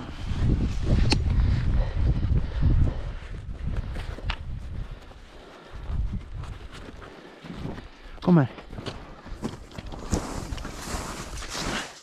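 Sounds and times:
wind on microphone: 0.0s - 6.9s
skis swishing through snow: 10.1s - 12.0s.

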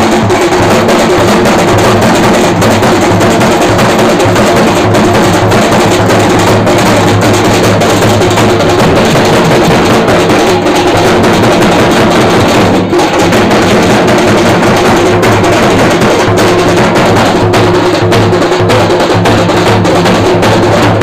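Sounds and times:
drum band drumming: 0.0s - 21.0s
metal barrel drum beaten with sticks: 0.0s - 21.0s.

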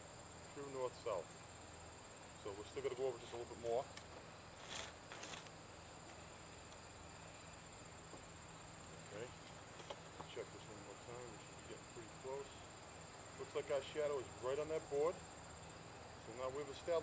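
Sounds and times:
insects droning: 0.0s - 17.0s.

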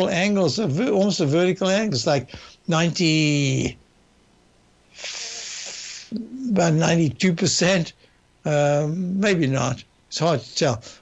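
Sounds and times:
man breathing with a hiss: 4.9s - 6.2s.

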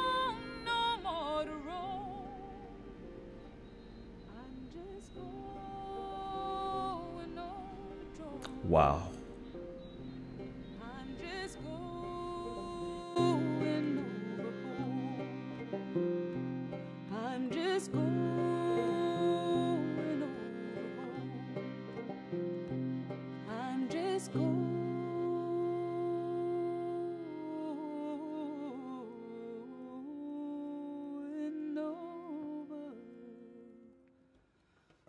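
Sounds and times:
woman singing: 0.0s - 3.0s, 4.2s - 8.6s, 10.8s - 15.5s, 17.0s - 21.6s, 23.4s - 34.0s
accordion chord: 0.0s - 29.4s
banjo plucks: 9.2s - 27.6s.

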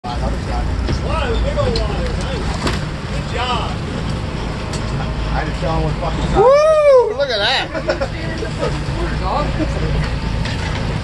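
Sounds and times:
boat engine rumble: 0.0s - 11.0s
people shouting excitedly: 6.4s - 7.2s.

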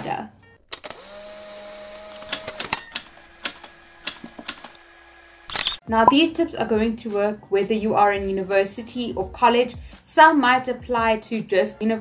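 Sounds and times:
camera shutter clicks: 5.5s - 5.8s.

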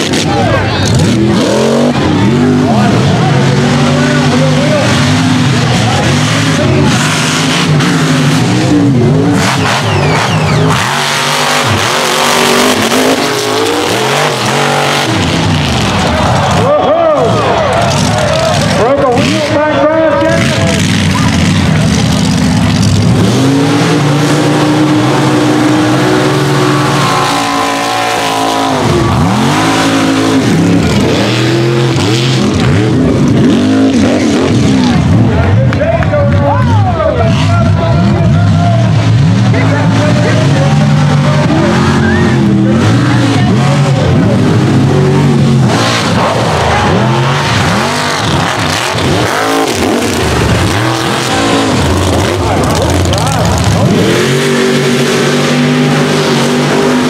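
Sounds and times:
truck engines revving: 0.0s - 57.0s.

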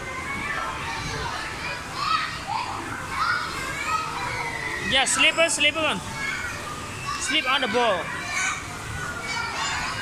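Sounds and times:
children calling out: 0.0s - 10.0s.

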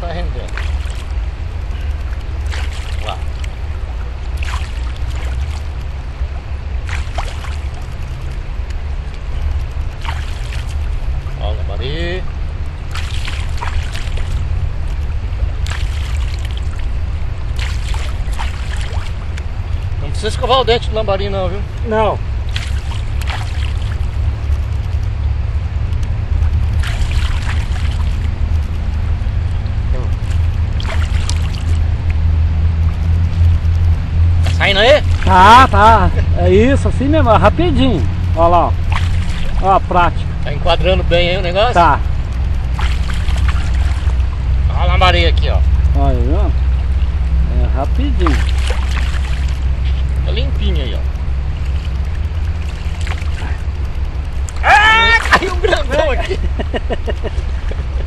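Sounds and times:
river water running over rock: 0.0s - 58.0s
hands splashing in water: 0.5s - 1.2s, 2.0s - 3.7s, 4.3s - 5.8s, 6.8s - 8.4s, 10.0s - 11.3s, 12.9s - 16.9s, 17.5s - 19.4s, 22.4s - 25.0s, 26.8s - 28.3s, 30.2s - 31.9s, 38.8s - 39.6s, 42.6s - 44.3s, 48.1s - 50.1s, 51.6s - 53.7s, 54.3s - 56.1s.

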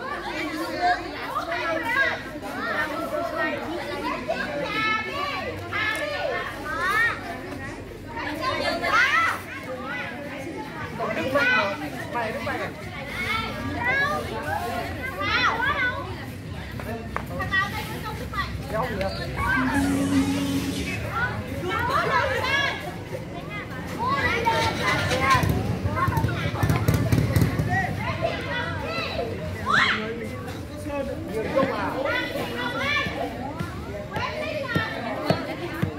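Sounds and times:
children talking and calling out: 0.0s - 16.7s, 17.4s - 30.3s, 31.6s - 35.9s.

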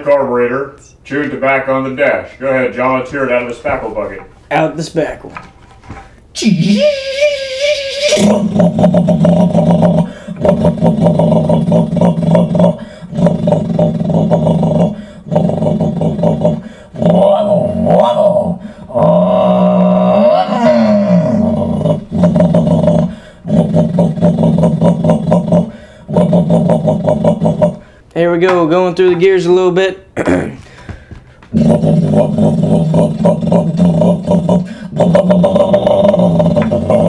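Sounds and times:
man imitating engine revving: 6.4s - 27.9s, 31.5s - 37.0s.

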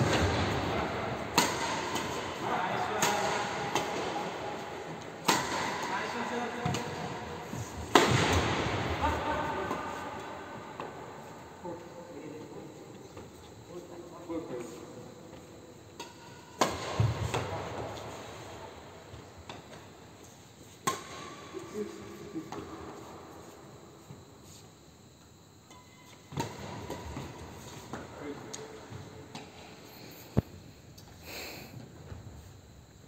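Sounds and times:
racket hitting shuttlecock: 0.0s - 9.1s, 16.0s - 18.5s, 20.8s - 21.4s.

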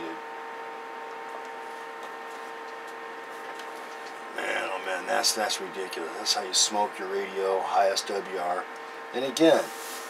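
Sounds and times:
electronic hum: 0.0s - 10.0s.

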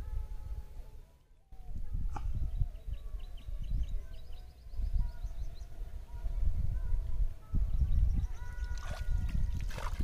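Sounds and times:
wind rumbling on microphone: 0.0s - 10.0s
bird chirping: 7.7s - 10.0s.

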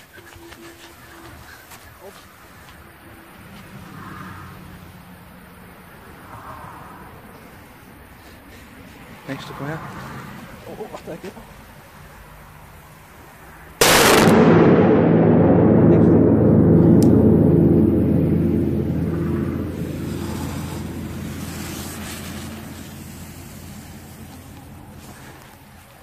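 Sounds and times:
firecracker bang echoing in tunnel: 13.8s - 24.6s.

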